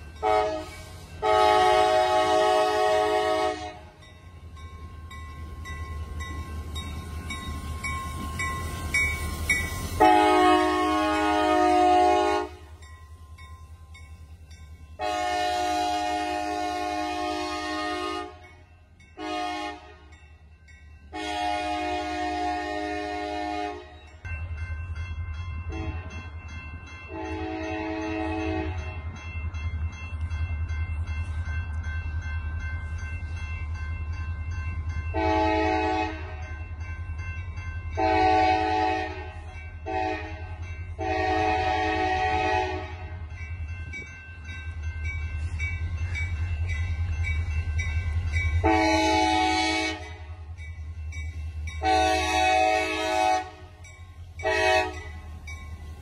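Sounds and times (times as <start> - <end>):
locomotive air horn blasts: 0.2 - 4.0, 10.0 - 12.7, 15.0 - 18.4, 19.2 - 20.1, 21.1 - 24.0, 27.1 - 28.8, 35.2 - 36.4, 38.0 - 43.1, 48.6 - 50.3, 51.8 - 53.8, 54.4 - 55.1.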